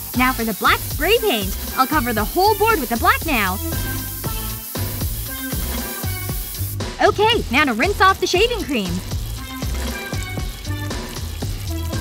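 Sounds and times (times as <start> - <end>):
aerosol spray can hissing: 0.0 - 12.0
background music with steady beat: 0.0 - 12.0.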